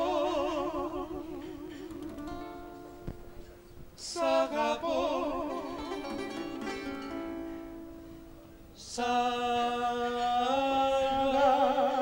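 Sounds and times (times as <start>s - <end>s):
person singing with vibrato: 0.0s - 3.0s, 3.9s - 12.0s
guitar: 0.0s - 9.0s
bouzouki: 1.3s - 3.8s, 5.0s - 8.5s.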